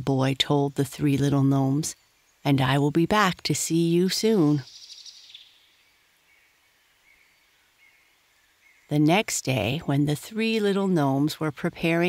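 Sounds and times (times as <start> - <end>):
faint high-pitched chirping: 0.6 - 9.8.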